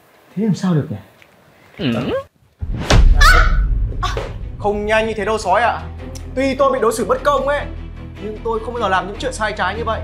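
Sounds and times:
low rumble: 2.6s - 6.2s
dramatic hit: 2.6s - 6.4s
woman's startled cry: 3.2s - 4.2s.

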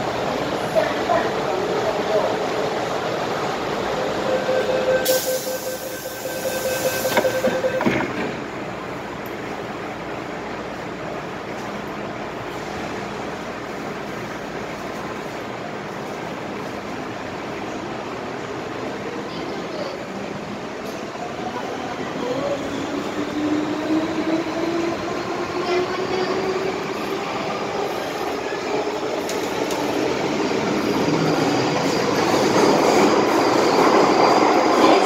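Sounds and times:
train running: 0.0s - 35.0s
train doors closing knocks: 7.1s - 8.5s.

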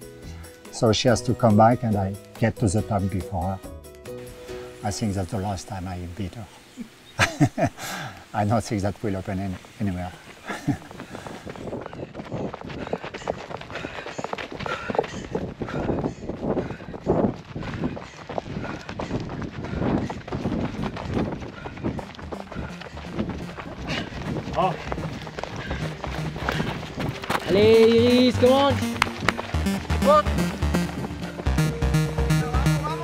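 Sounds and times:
running footsteps on dirt: 7.3s - 32.6s
music with low pulse: 20.8s - 33.0s.

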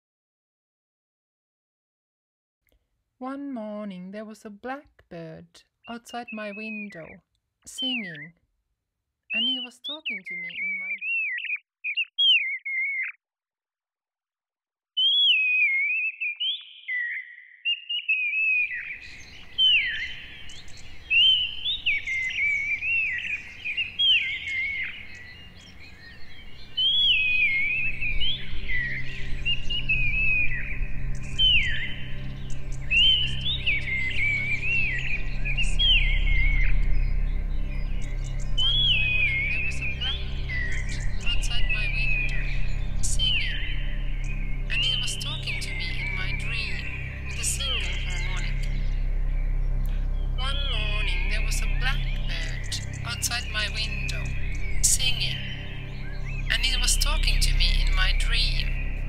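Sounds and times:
whistled birdlike chirps: 5.8s - 8.4s, 9.3s - 13.2s, 15.0s - 49.0s
background soundscape: 18.1s - 59.0s
low sustained synth pad: 18.6s - 59.0s.

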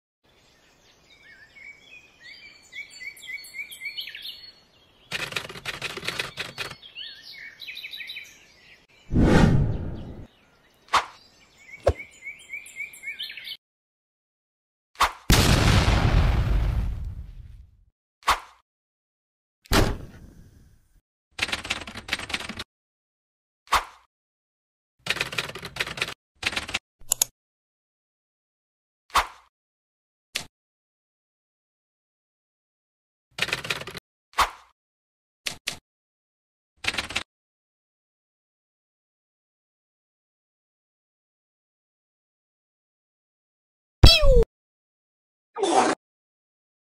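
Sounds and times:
birds chirping: 0.3s - 13.6s
rattling burst of clicks: 5.1s - 6.8s
sharp clicks: 5.1s - 6.8s.

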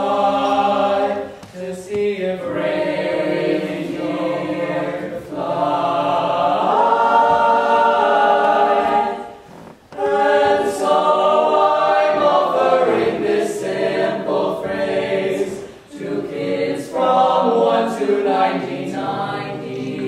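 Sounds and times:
boys singing close harmony: 0.0s - 20.0s.

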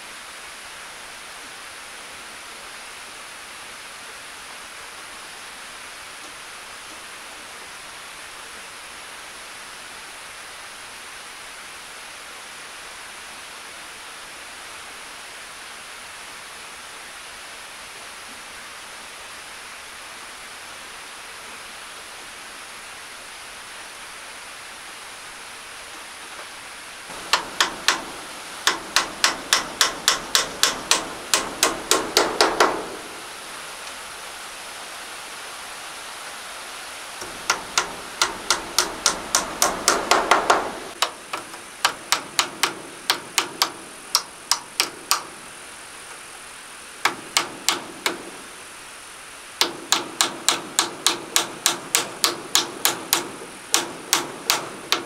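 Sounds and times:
hammer driving nails into wood: 27.1s - 33.3s, 37.2s - 45.5s, 47.0s - 48.5s, 49.6s - 55.0s.

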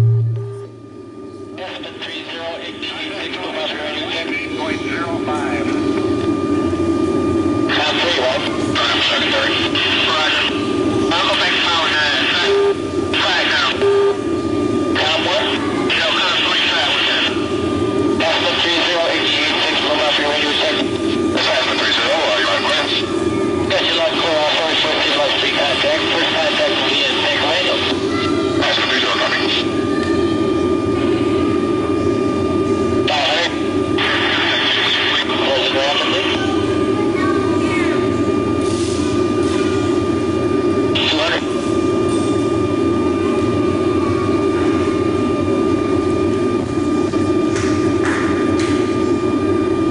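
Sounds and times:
aircraft cabin drone: 0.0s - 49.9s
garbled radio voices: 1.5s - 6.5s, 7.5s - 31.4s, 32.4s - 38.4s, 40.8s - 41.6s.

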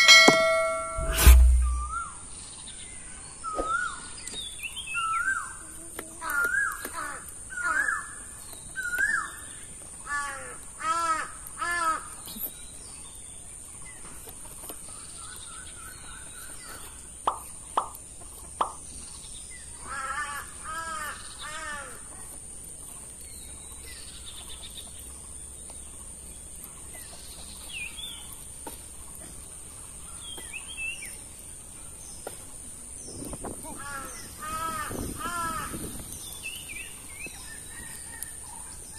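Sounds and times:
steady high-pitched whine: 0.0s - 2.1s
crows cawing: 10.0s - 12.1s, 19.8s - 22.0s, 33.8s - 35.8s.

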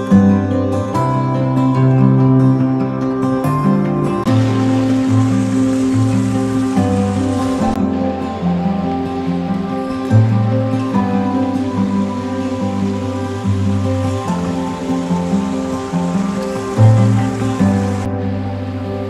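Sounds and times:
sustained notes: 4.1s - 19.0s.

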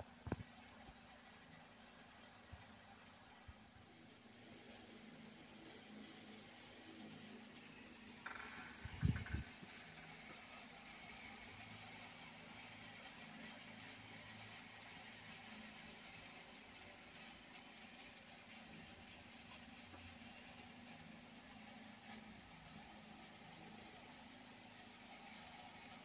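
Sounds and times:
room hiss with low hum: 0.0s - 26.0s.

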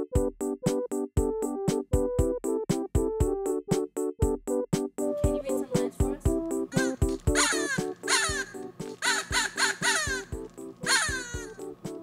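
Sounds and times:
electronic keyboard music with beat: 0.0s - 12.0s
short falling calls: 6.7s - 11.7s.

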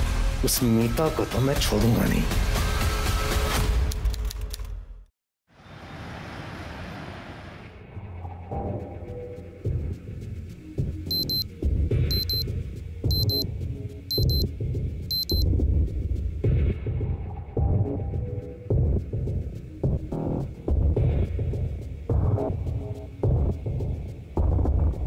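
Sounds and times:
electronic alarm beeping: 11.1s - 11.5s, 12.1s - 12.4s, 13.1s - 13.4s, 14.1s - 14.5s, 15.1s - 15.4s.

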